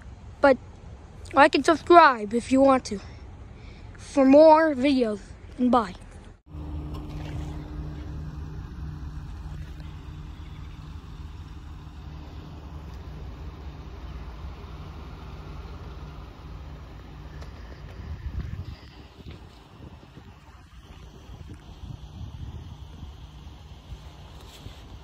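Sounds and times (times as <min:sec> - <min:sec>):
diesel locomotive engine rumbling: 0:06.4 - 0:25.0.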